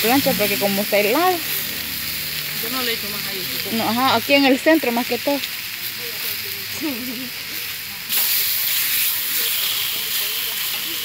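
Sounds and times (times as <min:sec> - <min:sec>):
beef sizzling on a griddle: 0:00.0 - 0:11.0.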